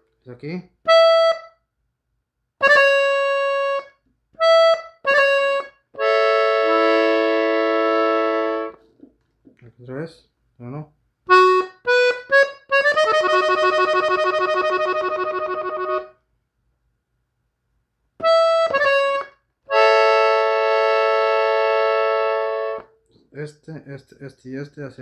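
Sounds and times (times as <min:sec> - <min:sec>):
button accordion playing: 0:00.9 - 0:01.6, 0:02.6 - 0:08.8, 0:11.3 - 0:16.2, 0:18.2 - 0:22.9.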